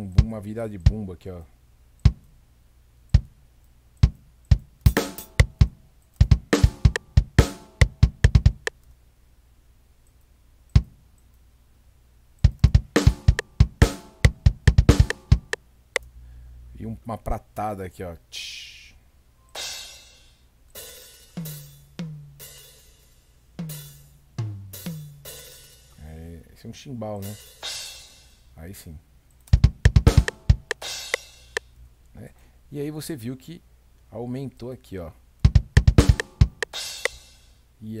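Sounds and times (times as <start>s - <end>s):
closed hi-hat ticks: 1.9s - 2.4s, 3.0s - 9.0s, 12.3s - 16.2s, 19.5s - 26.2s, 29.2s - 32.2s, 35.4s - 37.6s
kick drum thumps: 2.1s - 2.3s, 3.2s - 3.4s, 4.0s - 8.7s, 10.8s - 11.0s, 12.4s - 15.6s, 29.6s - 30.8s, 35.5s - 36.7s
snare drum hits: 12.5s - 15.6s, 29.6s - 31.6s, 35.5s - 37.2s.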